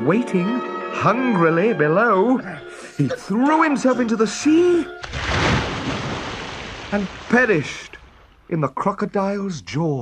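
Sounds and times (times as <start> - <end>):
body splashing into water: 5.0 - 8.5.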